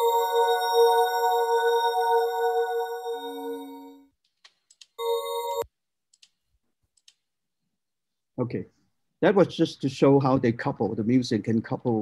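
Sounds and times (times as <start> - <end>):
ambient electronic chord: 0.0 - 4.0.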